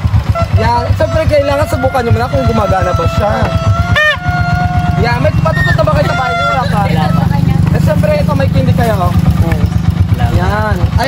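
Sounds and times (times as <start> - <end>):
motorcycle engine idling: 0.0 - 11.0
plastic party horn blowing: 0.3 - 6.7.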